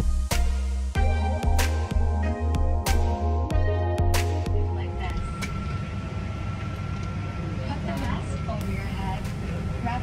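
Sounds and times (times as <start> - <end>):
airliner engine rumble: 1.0 - 10.0
thin steady whine: 1.0 - 10.0
faint passenger voices: 4.8 - 10.0.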